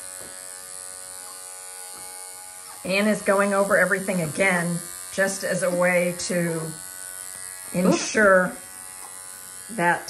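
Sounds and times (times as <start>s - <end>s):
electric clipper buzzing: 0.0s - 10.0s.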